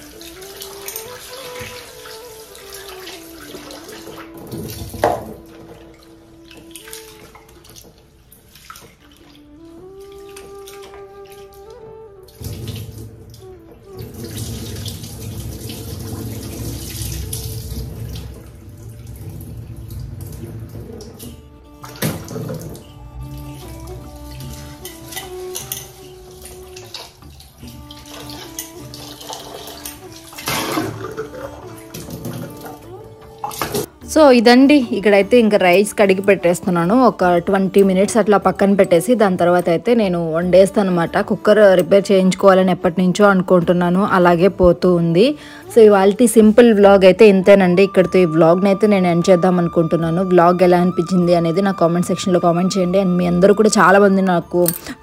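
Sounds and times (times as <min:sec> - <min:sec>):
tap water running into metal pot: 0:00.0 - 0:43.4
tap running into metal pot: 0:04.1 - 0:05.8, 0:27.2 - 0:32.8.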